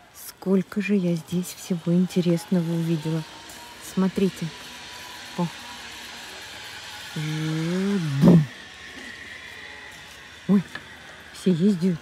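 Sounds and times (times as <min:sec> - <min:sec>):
faint high whine: 0:00.0 - 0:12.0
outdoor background noise: 0:00.0 - 0:12.0.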